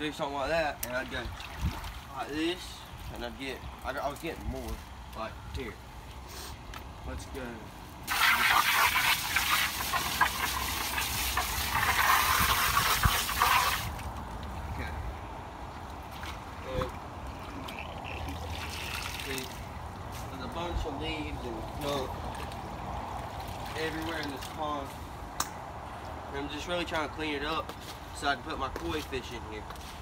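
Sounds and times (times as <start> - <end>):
water rushing and splashing: 15.9 - 19.9.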